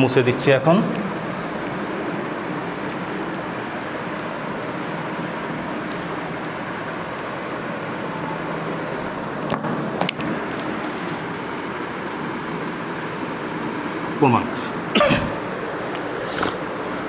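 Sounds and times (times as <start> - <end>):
low rumble and hiss: 0.0 - 17.0.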